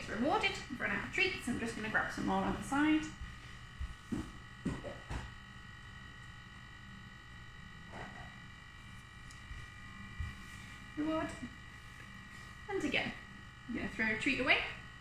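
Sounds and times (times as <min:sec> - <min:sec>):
steady electrical buzz: 0:00.0 - 0:15.0.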